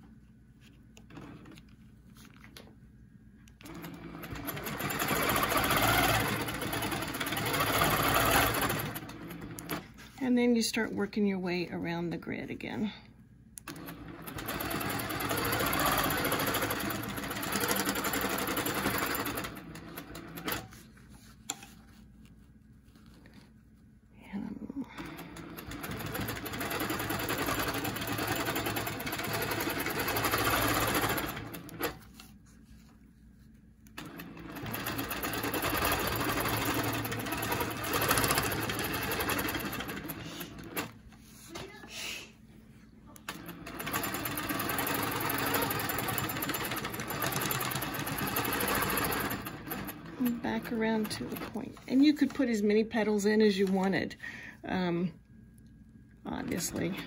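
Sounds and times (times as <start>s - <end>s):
quilting machine stitching: 3.6s - 9.9s, 13.6s - 20.8s, 25.0s - 32.1s, 34.0s - 41.0s, 43.2s - 52.6s.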